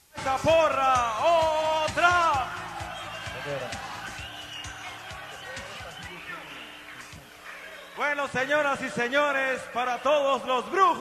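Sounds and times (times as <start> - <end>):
voices: 0.2 - 11.0
steady drum beat: 0.4 - 6.4.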